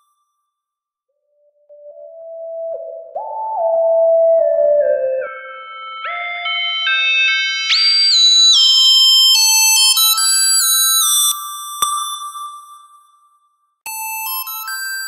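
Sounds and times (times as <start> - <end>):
synthesizer lead melody: 1.4 - 9.0.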